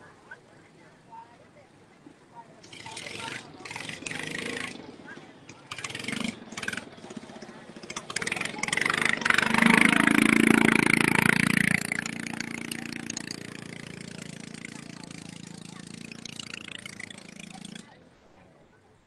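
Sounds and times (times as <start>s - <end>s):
boat engine revving: 2.4s - 19.0s.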